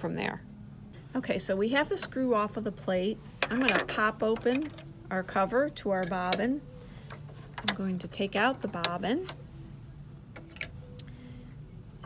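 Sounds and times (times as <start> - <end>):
faint room hum: 0.0 - 12.0.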